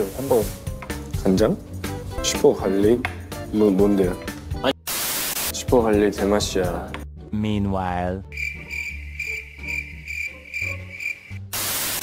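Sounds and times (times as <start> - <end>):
faint background music: 0.0 - 4.8, 5.4 - 11.6
cricket chirping: 8.3 - 11.4.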